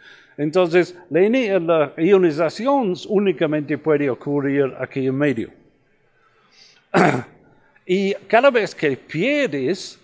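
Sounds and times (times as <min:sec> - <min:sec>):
man clearing throat: 0:06.9 - 0:07.4.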